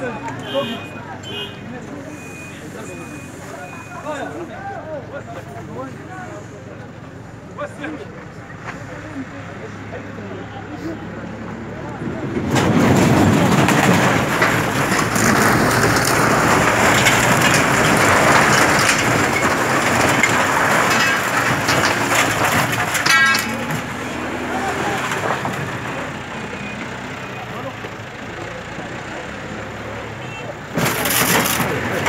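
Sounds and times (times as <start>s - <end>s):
sheet metal and wood crashing: 12.3s - 26.1s, 30.7s - 32.0s.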